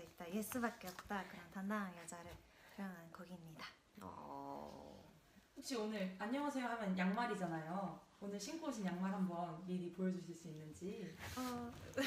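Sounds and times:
woman speaking: 0:00.0 - 0:12.0.

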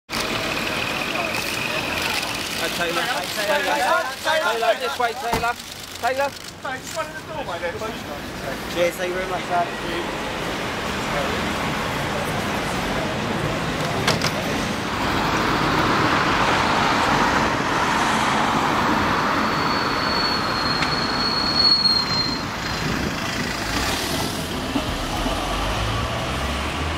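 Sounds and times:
voices: 0:00.2 - 0:14.6.

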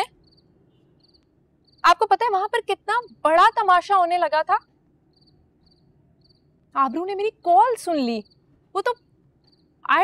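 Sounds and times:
cricket chirping: 0:00.0 - 0:10.0.

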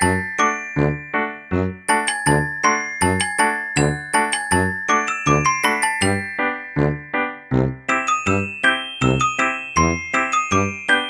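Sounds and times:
bell-like mallet melody: 0:00.0 - 0:11.0.

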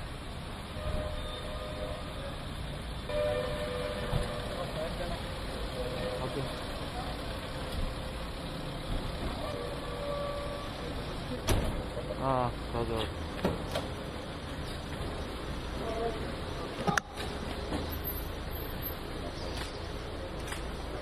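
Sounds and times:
car engine running: 0:02.0 - 0:16.8.

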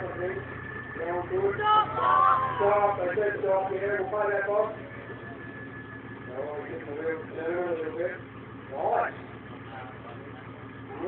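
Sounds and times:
man's voice: 0:00.0 - 0:04.8
truck engine idling: 0:00.0 - 0:11.0.

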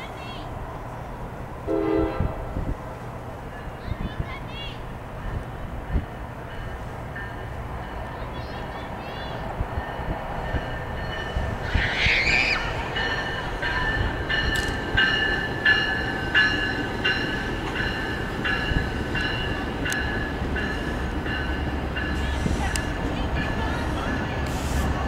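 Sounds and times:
diesel locomotive rumble: 0:00.0 - 0:25.0
high squeal: 0:11.6 - 0:12.8.

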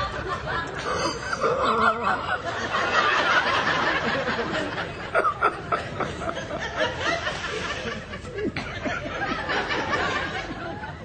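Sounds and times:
people laughing and giggling: 0:00.0 - 0:11.0.

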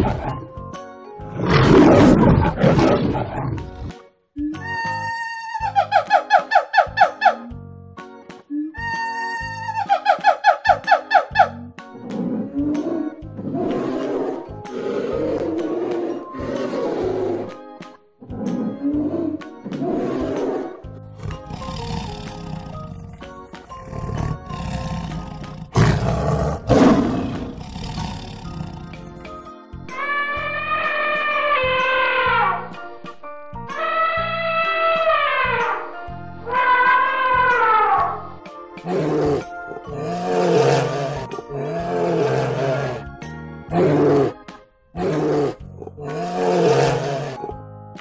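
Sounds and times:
background music: 0:00.0 - 0:48.0
tiger growling: 0:01.2 - 0:04.0, 0:12.0 - 0:17.6, 0:18.2 - 0:29.4, 0:38.8 - 0:47.6
tiger roaring: 0:01.3 - 0:03.9, 0:12.1 - 0:17.6, 0:18.3 - 0:29.3, 0:38.8 - 0:43.1, 0:43.7 - 0:44.4, 0:45.0 - 0:47.5.

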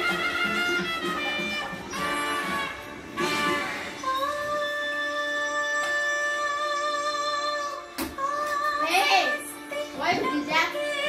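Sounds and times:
girl singing through tv speaker: 0:00.0 - 0:11.0
musical accompaniment: 0:00.0 - 0:11.0.

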